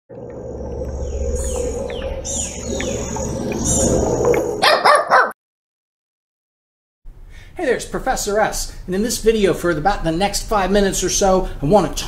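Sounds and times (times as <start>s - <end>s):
low synthesizer hum: 0.1s - 4.7s.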